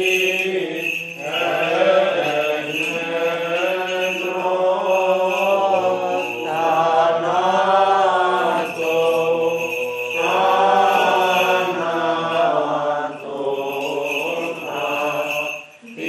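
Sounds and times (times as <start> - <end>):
voice chanting melismatic lines: 0.0 - 16.0.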